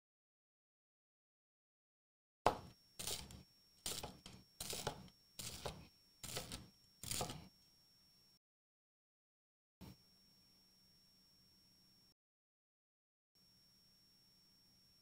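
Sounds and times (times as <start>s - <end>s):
knife crunching through bread crust: 3.0s - 7.5s.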